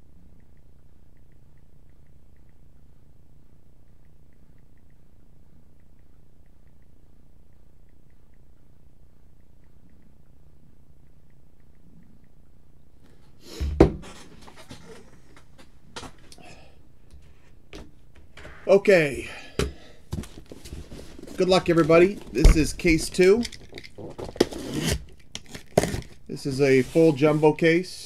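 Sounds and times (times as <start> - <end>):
faint regular ticking: 0.0 - 13.0
low hum: 0.0 - 13.4
sharp clicks: 0.3 - 2.9, 3.9 - 8.7
crackling rustling handling noise: 20.1 - 27.7.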